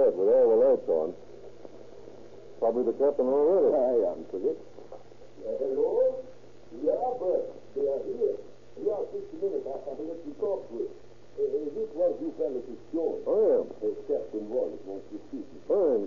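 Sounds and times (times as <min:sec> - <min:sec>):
steady low hum: 0:00.0 - 0:16.0
voices talking: 0:00.0 - 0:16.0.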